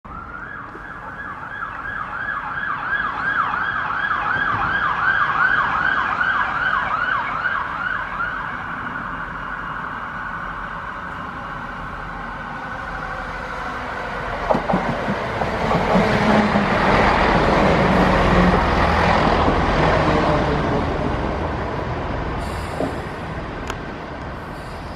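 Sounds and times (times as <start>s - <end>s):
siren yelping: 0.1s - 10.8s
diesel train approaching: 0.1s - 24.9s.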